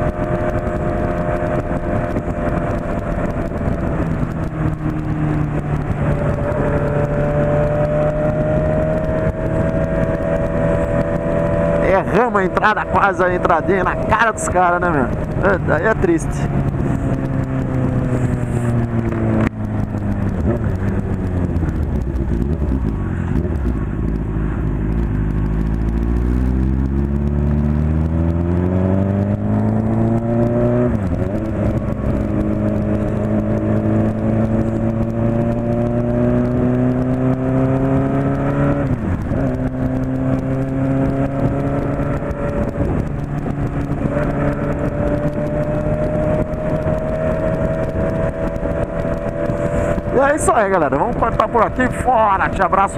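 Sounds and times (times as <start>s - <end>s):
motorcycle engine revving: 0.0s - 52.9s
wind rush on microphone: 0.0s - 52.9s.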